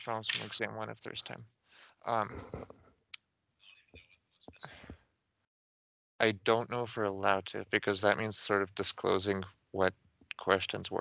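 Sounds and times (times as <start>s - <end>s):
quiet voiced sounds: 0.0s - 1.4s, 2.1s - 2.7s, 6.2s - 11.0s
soft whispering: 0.0s - 1.4s, 2.1s - 2.7s, 6.2s - 11.0s.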